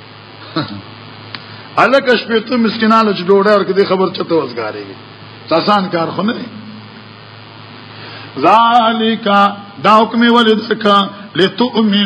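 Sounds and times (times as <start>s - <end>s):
man chanting recitation: 8.4s - 12.0s.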